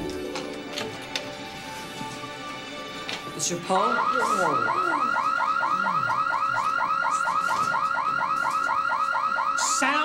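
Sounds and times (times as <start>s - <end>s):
warbling security alarm: 3.6s - 10.0s.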